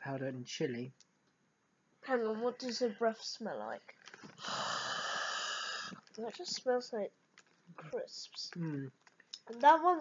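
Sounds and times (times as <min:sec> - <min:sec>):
person breathing out hard: 0:04.4 - 0:06.0.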